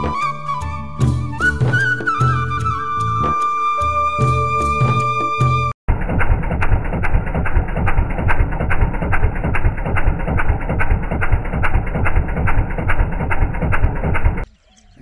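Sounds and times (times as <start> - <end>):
small engine running with knock: 5.9 - 14.4.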